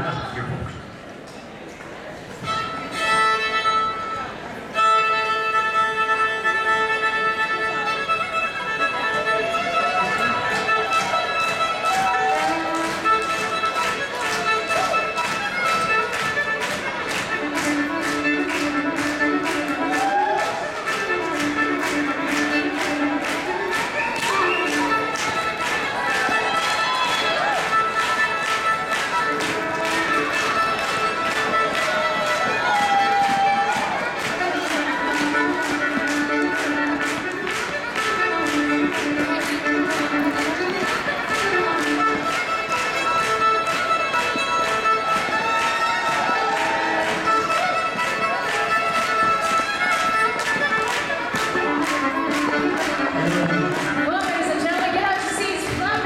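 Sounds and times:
solo fiddle dance tune: 2.0 - 56.0
steady tapping beat: 10.2 - 56.0.

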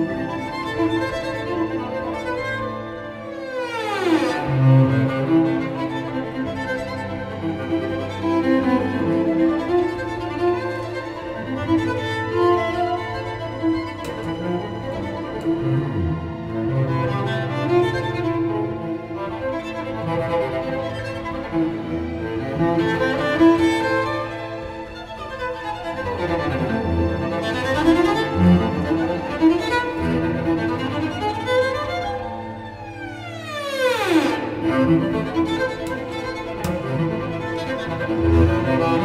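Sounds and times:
solo cello with orchestra: 0.0 - 39.0.

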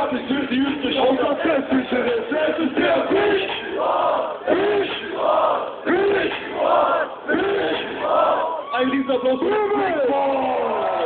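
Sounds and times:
crowd chanting in unison: 1.1 - 8.7.

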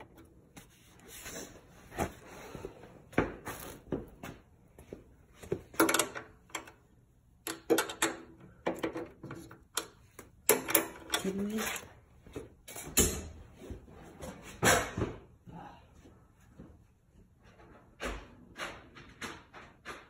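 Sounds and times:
tools and parts clattering: 5.4 - 6.8, 7.5 - 13.4.

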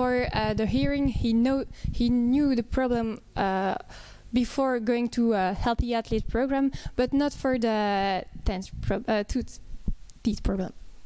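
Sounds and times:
soft low thumps: 0.0 - 3.1
person speaking: 10.2 - 10.8.

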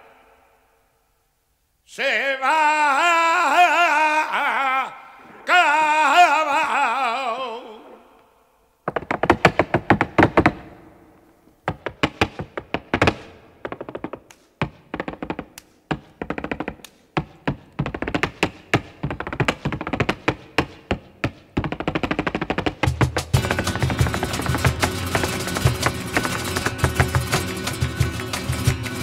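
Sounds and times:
dance shoes striking floor: 8.9 - 10.8, 11.6 - 29.0.

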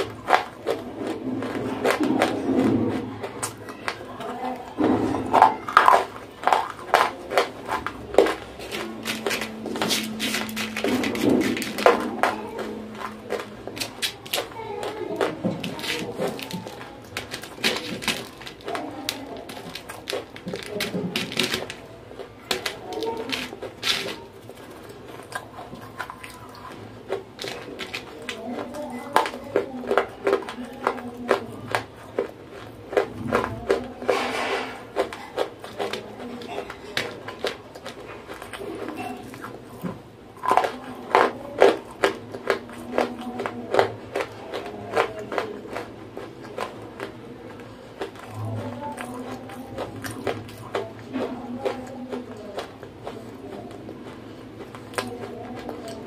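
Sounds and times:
chewing dry clay: 0.0 - 56.0
clay crackling on plastic tray: 0.0 - 56.0.

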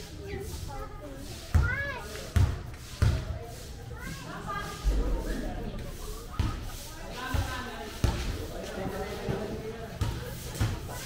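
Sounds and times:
people's voices: 0.0 - 11.0
basketball bouncing on court: 1.5 - 1.7, 2.4 - 3.2.

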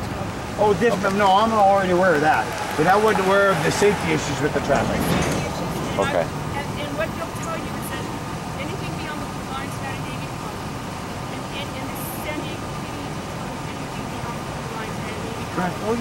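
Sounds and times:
faint voices: 0.0 - 16.0
street traffic: 0.0 - 16.0.

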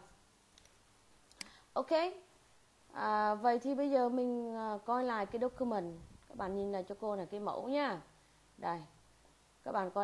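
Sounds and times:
computer mouse click: 0.6 - 1.6.

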